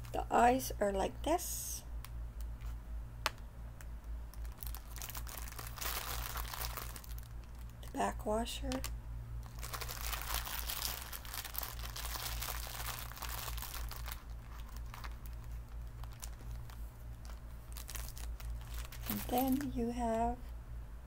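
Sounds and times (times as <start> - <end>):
plastic packet crinkling: 4.3 - 8.0, 8.7 - 19.8.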